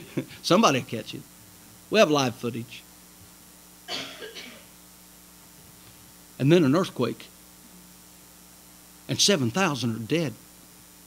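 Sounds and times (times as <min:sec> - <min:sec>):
faint steady hum: 0:00.0 - 0:11.0
person coughing: 0:03.9 - 0:04.7.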